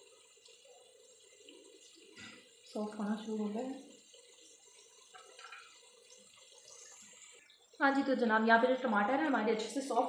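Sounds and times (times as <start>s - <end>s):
tomatoes sizzling in hot oil: 0.0s - 10.0s.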